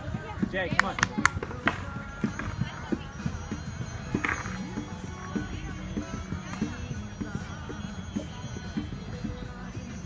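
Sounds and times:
indistinct voices outdoors: 0.0s - 10.0s.

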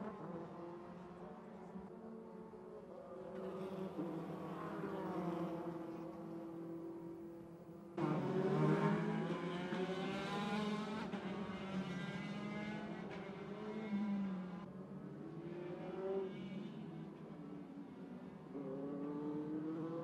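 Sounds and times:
racing car engines: 0.0s - 20.0s.

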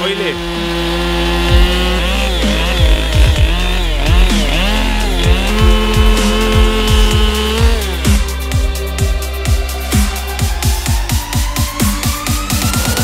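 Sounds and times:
chainsaw cutting wood: 0.0s - 13.0s
electronic music with kick drum: 1.4s - 13.0s.

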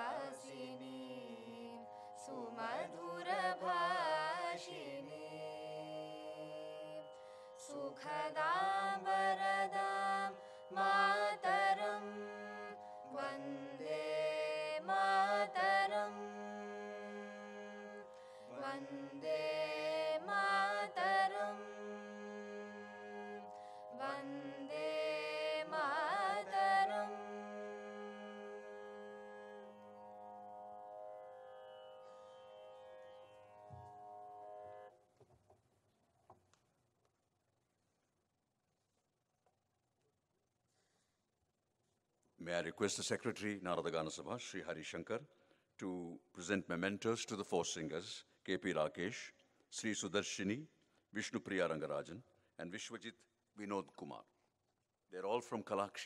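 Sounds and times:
group singing prayer: 2.3s - 6.9s, 8.3s - 29.6s.

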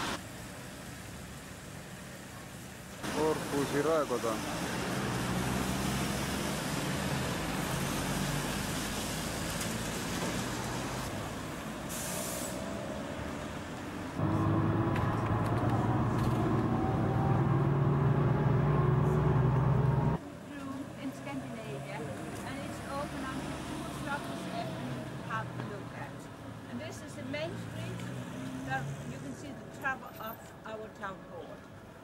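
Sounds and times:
street traffic: 0.0s - 32.0s
short hiss: 11.9s - 12.6s
vehicle engine drone from inside: 14.2s - 20.2s.

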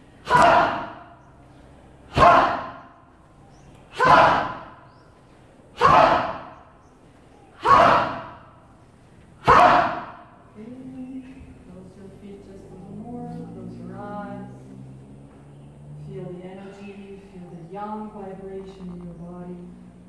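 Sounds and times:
group shouting: 0.2s - 1.2s, 2.1s - 3.0s, 3.8s - 4.9s, 5.8s - 6.7s, 7.4s - 8.7s, 9.4s - 10.4s.

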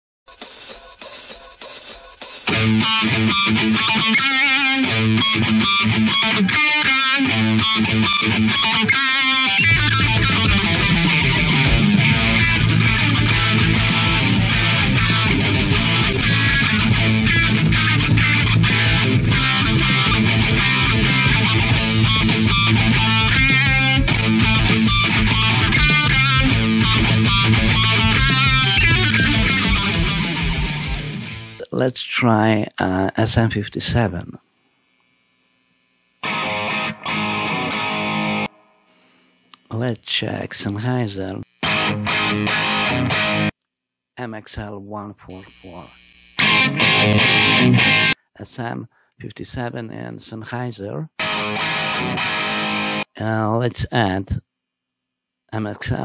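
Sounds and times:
hi-hat beat: 0.3s - 31.2s
electric guitar riffs: 2.5s - 31.7s, 36.2s - 39.1s, 41.4s - 43.5s, 45.4s - 48.2s, 51.1s - 53.2s
steady low bass: 9.8s - 31.1s.

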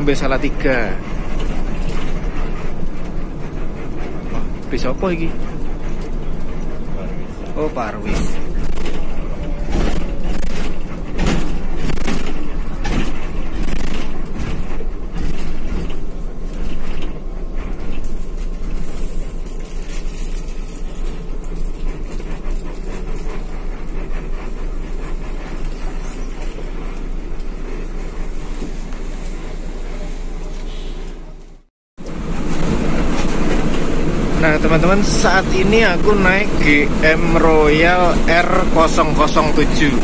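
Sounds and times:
bus engine and road noise: 0.0s - 40.0s.

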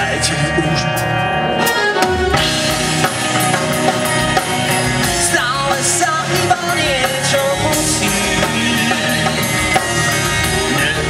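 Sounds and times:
drum kit beat: 0.0s - 11.0s
keyboard chords: 0.0s - 11.0s
live rock band playing: 0.0s - 11.0s.

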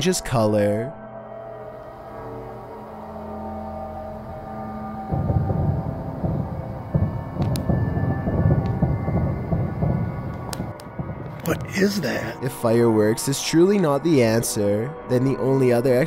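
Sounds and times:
low music drone: 0.6s - 15.6s
deep rumbling crackle: 4.3s - 11.8s
sharp cracks: 6.4s - 12.4s.

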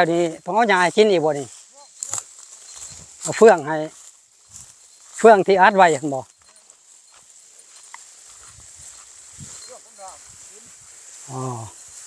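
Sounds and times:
man speaking: 0.0s - 2.2s, 3.2s - 4.0s, 5.2s - 6.6s, 9.6s - 11.8s
footfalls on dry stubble: 0.0s - 12.0s.

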